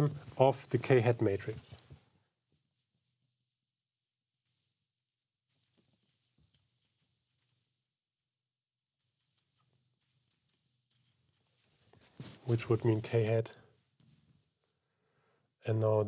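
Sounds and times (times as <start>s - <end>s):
marker squeaking on glass: 5.5s - 7.6s, 8.2s - 11.6s.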